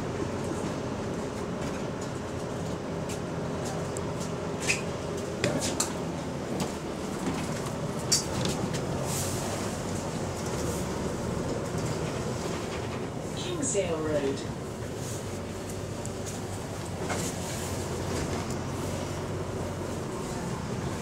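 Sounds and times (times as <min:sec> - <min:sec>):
bus engine and road drone: 0:00.0 - 0:21.0.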